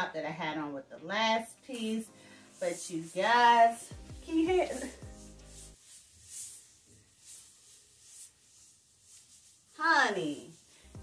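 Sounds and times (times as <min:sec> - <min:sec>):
faint rubbing of faux leather skirt: 0:01.7 - 0:11.0.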